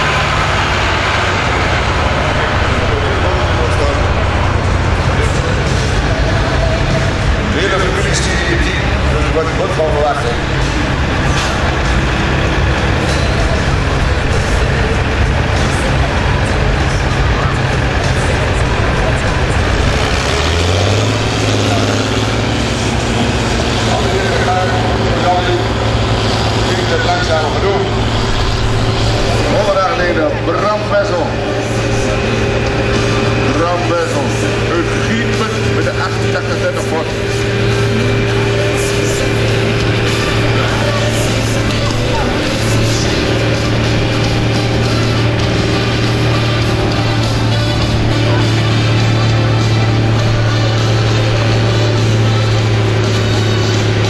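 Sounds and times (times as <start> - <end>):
tractor engines droning: 0.0 - 54.0.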